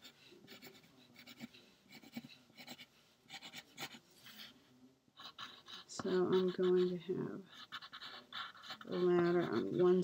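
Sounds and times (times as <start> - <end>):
pencil scratching on paper: 0.0 - 4.6, 5.2 - 10.0.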